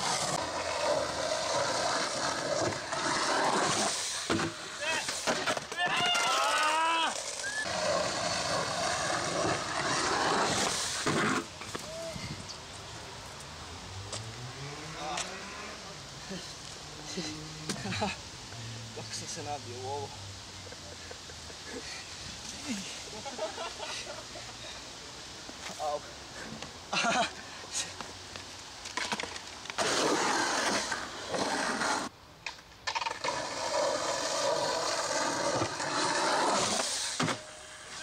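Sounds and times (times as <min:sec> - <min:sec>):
skateboard rolling on concrete: 0:00.0 - 0:19.3, 0:25.4 - 0:38.0.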